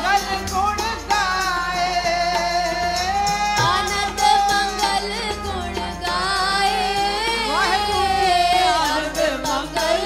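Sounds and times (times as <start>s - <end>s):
harmonium: 0.0s - 10.0s
voices singing a hymn: 3.4s - 10.0s.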